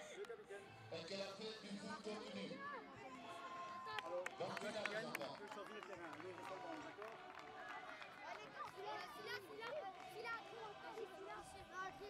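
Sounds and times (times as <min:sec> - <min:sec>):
children talking and calling out: 0:07.7 - 0:12.0.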